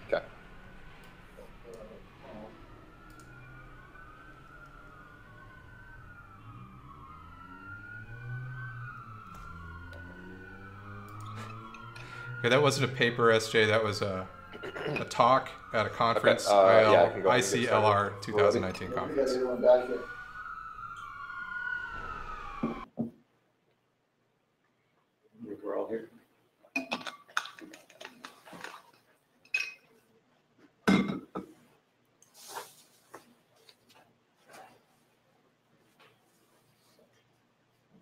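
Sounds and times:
police sirens wailing: 0:00.0 - 0:22.9.

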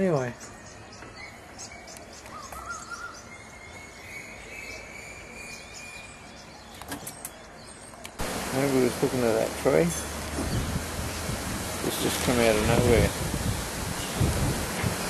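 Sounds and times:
outdoor background noise: 0:00.0 - 0:15.0
birds chirping and whistling: 0:00.2 - 0:08.1, 0:09.9 - 0:15.0
rush of wind noise: 0:08.2 - 0:15.0.

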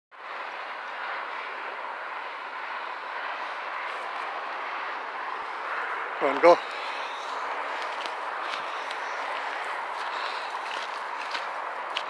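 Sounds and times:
distant freeway traffic: 0:00.1 - 0:12.0.

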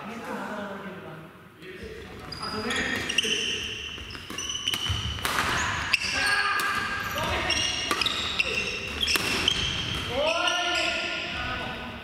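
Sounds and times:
shoes squeaking on wooden floor: 0:02.0 - 0:11.1
racket hitting shuttlecock: 0:03.0 - 0:10.1.

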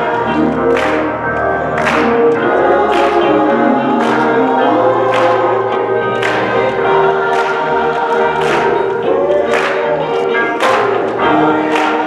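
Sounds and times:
choir singing: 0:00.0 - 0:12.0
electric guitar: 0:00.0 - 0:12.0.

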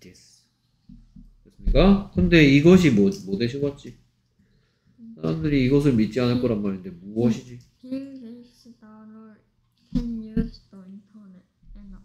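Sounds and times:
girl speaking quietly: 0:07.8 - 0:09.4, 0:10.0 - 0:12.0.

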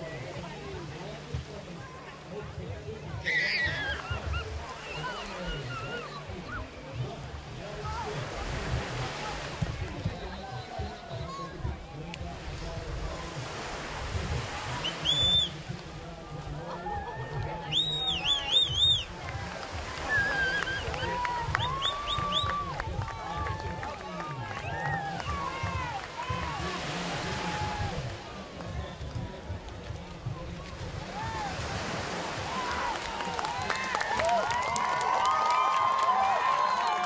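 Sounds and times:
indistinct voices and calls: 0:00.0 - 0:34.2
small surf washing: 0:00.0 - 0:37.0
wind rumble on microphone: 0:06.4 - 0:15.0, 0:15.6 - 0:32.6.

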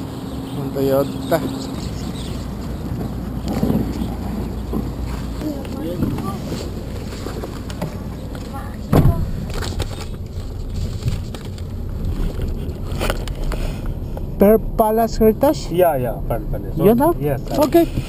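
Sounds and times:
wind rumbling on microphone: 0:00.0 - 0:15.5.

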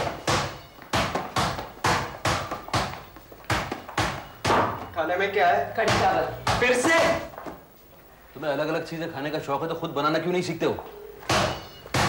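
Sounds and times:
basketball bouncing: 0:00.0 - 0:05.0, 0:05.8 - 0:07.5.

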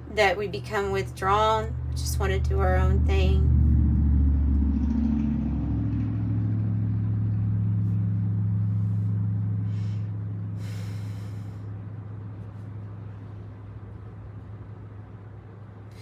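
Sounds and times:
low rumble with hum: 0:00.0 - 0:16.0.

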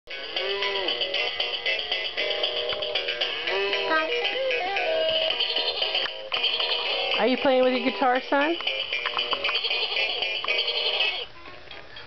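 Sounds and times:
electronic toy guitar tune: 0:00.1 - 0:11.3.

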